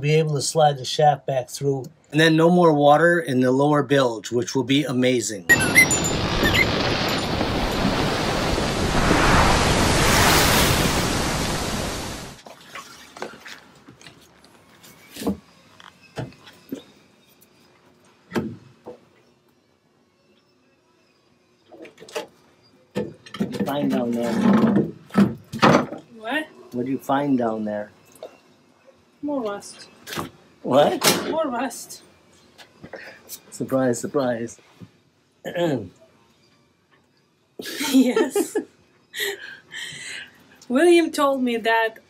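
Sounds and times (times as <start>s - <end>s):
loud steady rushing noise: 5.5s - 12.4s.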